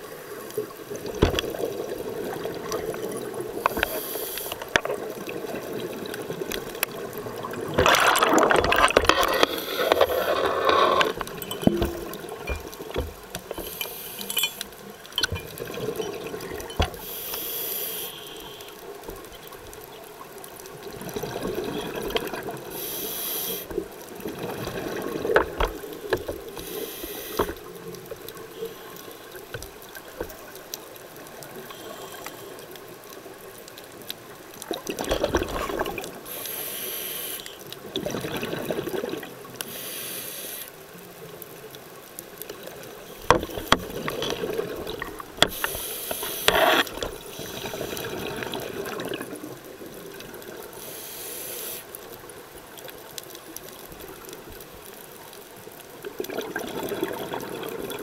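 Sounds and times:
hissing regulator inhalations: 3.6 - 4.7, 9.2 - 11.4, 13.5 - 14.7, 16.9 - 18.9, 22.7 - 23.7, 26.6 - 27.7, 36.2 - 37.6, 39.6 - 40.8, 45.4 - 48.1, 50.8 - 52.0
gurgling exhaled bubbles: 4.9 - 13.3, 34.7 - 36.3, 37.8 - 39.5, 43.4 - 45.7, 46.5 - 50.6, 56.0 - 58.0.

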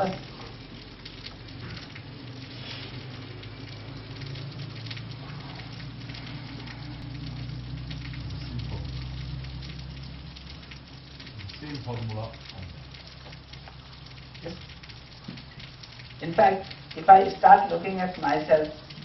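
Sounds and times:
low hum: 0.0 - 17.0
crackling hiss: 0.0 - 19.0.

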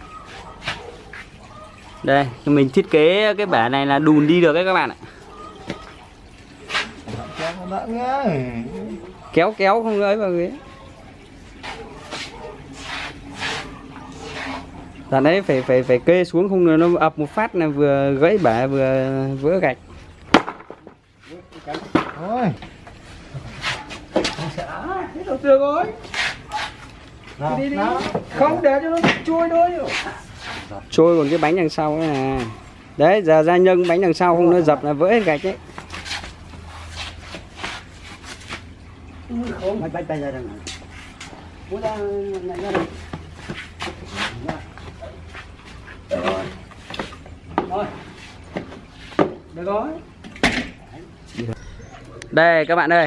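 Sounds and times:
wooden boards knocking on tiles: 20.3 - 21.0, 21.8 - 22.2.

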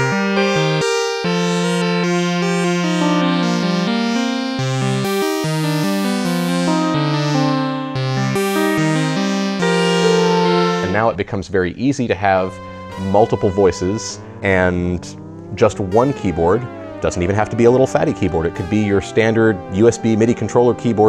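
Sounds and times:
synthesizer playing chords: 0.0 - 11.2, 12.2 - 21.0.

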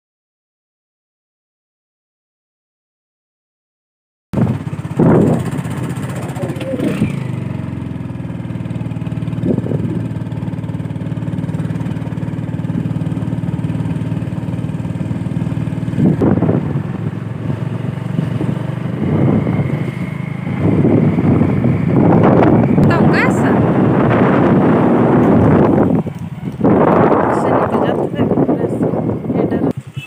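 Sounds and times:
wind gusts on microphone: 4.4 - 7.8, 9.0 - 10.5, 15.2 - 30.0
motorbike engine running: 4.4 - 30.0.

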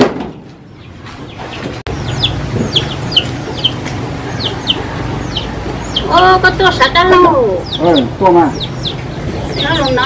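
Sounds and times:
chickens peeping: 0.5 - 10.0.

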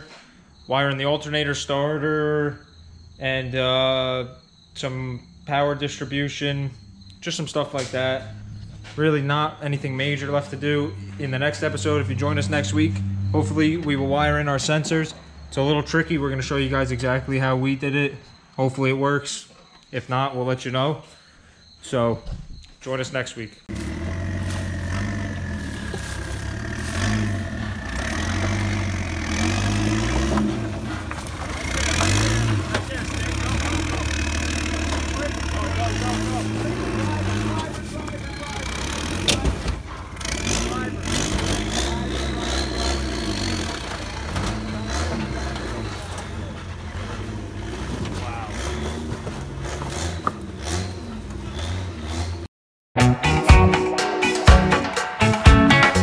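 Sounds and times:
off-road engine working at low speed: 3.8 - 17.5, 23.6 - 52.5
people's voices: 23.8 - 49.6.

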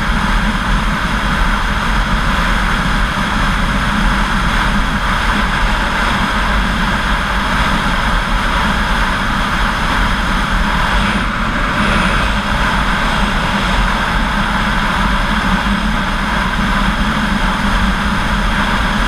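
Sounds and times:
motorcycle cruising: 0.0 - 19.0
wind rushing over microphone: 0.0 - 19.0.

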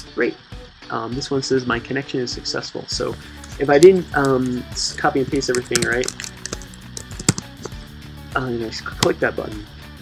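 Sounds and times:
background music: 3.0 - 10.0
keyboard keystrokes: 5.4 - 7.8.

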